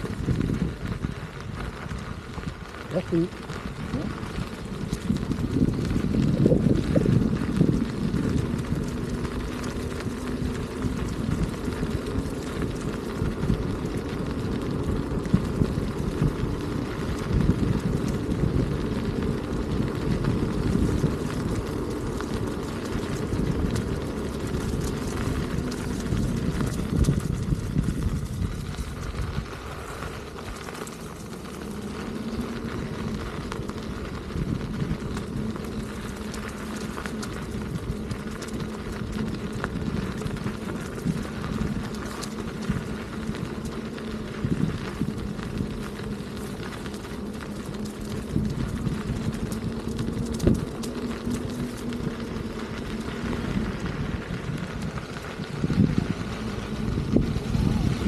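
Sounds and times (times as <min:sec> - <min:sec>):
gravel knocks: 0:00.0 - 0:58.0
low hum: 0:00.0 - 0:58.0
tyres rolling on gravel: 0:00.0 - 0:58.0
wind on microphone: 0:00.0 - 0:58.0.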